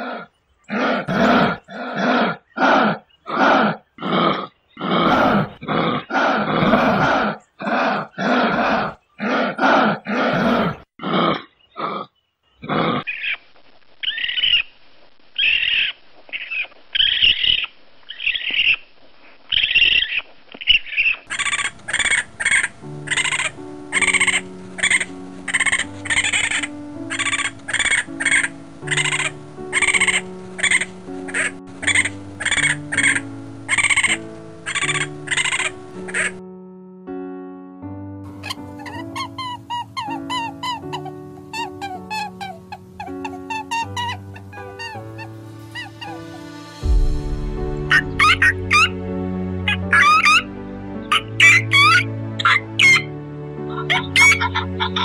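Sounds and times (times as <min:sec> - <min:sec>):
thin high-pitched animal calls: 0:15.4 - 0:18.8, 0:19.5 - 0:36.3, 0:38.4 - 0:46.5, 0:47.9 - 0:48.9, 0:49.7 - 0:50.5, 0:51.1 - 0:53.1, 0:53.9 - 0:54.5
music with steady beat: 0:45.5 - 0:49.6.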